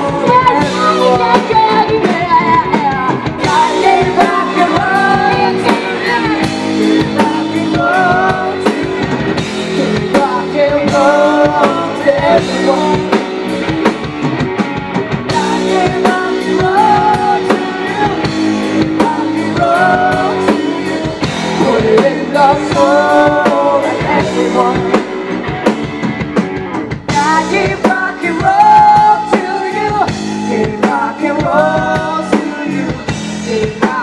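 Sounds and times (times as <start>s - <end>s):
woman singing: 0.0s - 9.0s, 15.3s - 25.1s, 27.1s - 34.0s
bass guitar: 0.0s - 34.0s
drum kit: 0.0s - 34.0s
electric guitar: 0.0s - 34.0s.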